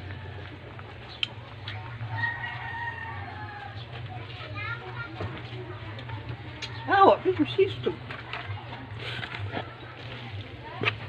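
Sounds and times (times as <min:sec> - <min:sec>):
rooster crowing: 0:02.1 - 0:03.8.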